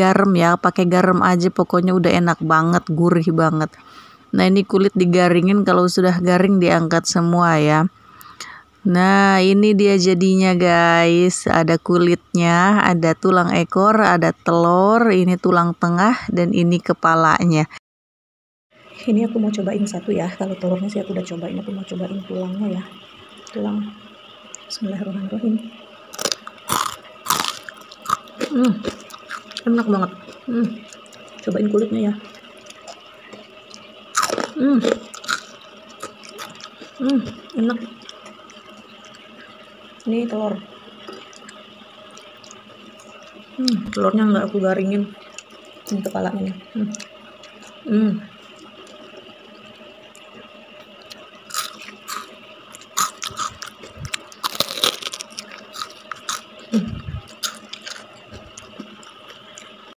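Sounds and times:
crispy food crunching clicks: 26.1s - 31.5s, 32.3s - 39.3s, 41.0s - 44.0s, 50.1s - 56.5s, 57.3s - 59.8s.

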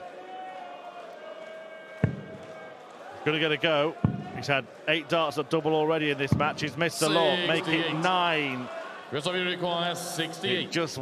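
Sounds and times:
murmur of crowd: 0.0s - 11.0s.

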